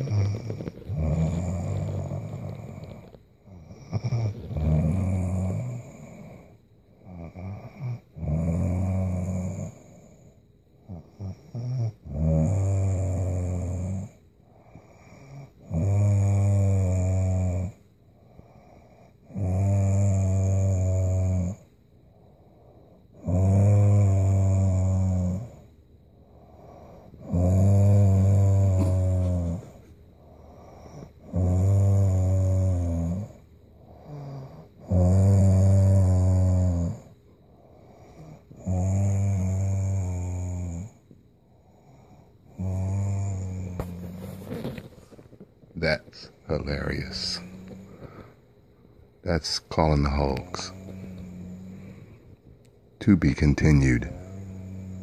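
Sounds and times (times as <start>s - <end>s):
woman snoring: 0.0s - 10.3s, 10.9s - 17.8s, 18.4s - 21.7s, 23.2s - 25.6s, 26.3s - 41.0s, 41.7s - 45.2s, 46.7s - 48.4s, 49.7s - 52.2s, 54.0s - 55.0s
quiet breathing: 0.0s - 12.0s, 12.9s - 15.7s, 16.4s - 55.0s.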